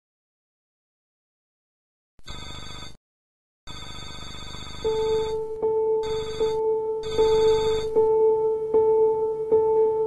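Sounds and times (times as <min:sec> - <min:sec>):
trilling bell ringing: 0:06.0 - 0:08.2.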